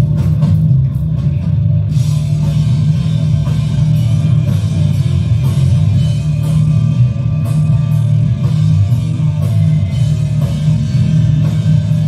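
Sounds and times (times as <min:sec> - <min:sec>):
heavy rock music: 0:00.0 - 0:12.0.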